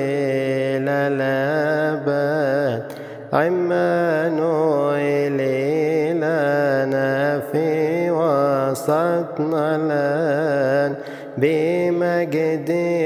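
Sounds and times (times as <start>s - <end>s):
man chanting a hymn: 0.0s - 13.0s.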